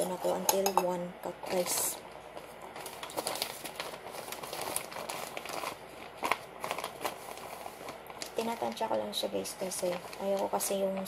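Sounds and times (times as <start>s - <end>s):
plastic packet crinkling: 1.4s - 11.0s.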